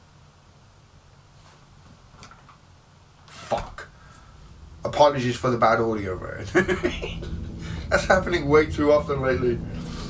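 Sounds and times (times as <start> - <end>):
man's voice: 4.8 - 10.0.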